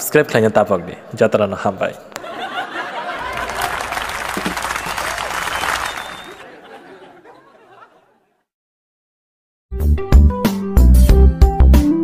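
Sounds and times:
crowd voices: 2.0s - 8.0s
audience applause: 2.8s - 7.9s.

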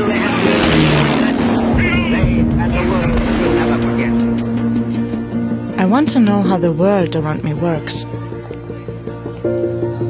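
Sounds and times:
aircraft flying past: 0.0s - 5.2s
background music with low note: 0.0s - 10.0s.

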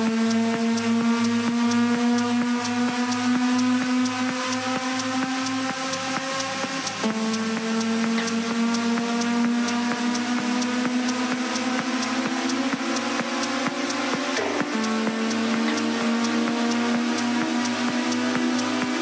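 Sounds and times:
techno music: 0.0s - 19.0s.

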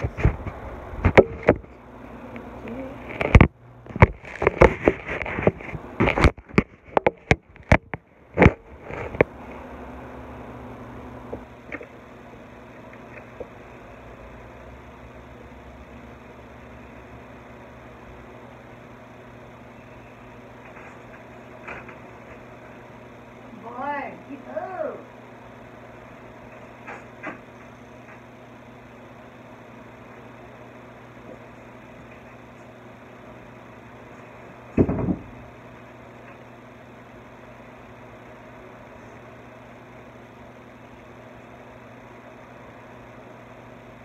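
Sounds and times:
faint low room hum: 0.0s - 44.0s.

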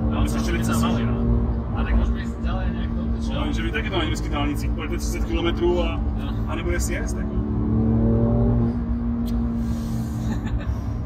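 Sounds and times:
car engine droning: 0.0s - 11.0s
road rumble: 0.0s - 11.0s.

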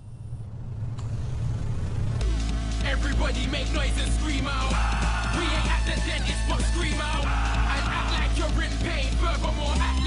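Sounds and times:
low rumble: 0.0s - 5.0s.

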